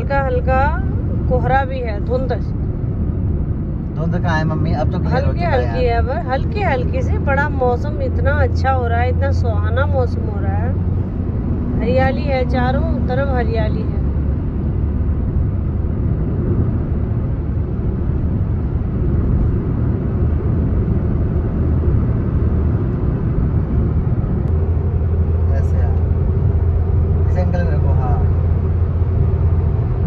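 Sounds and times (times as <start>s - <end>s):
car road and engine rumble: 0.0s - 30.0s
deeper hum: 0.0s - 30.0s.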